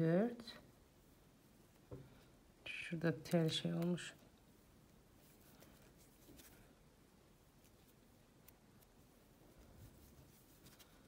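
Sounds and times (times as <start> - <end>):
yarn rustling: 3.5 - 11.0.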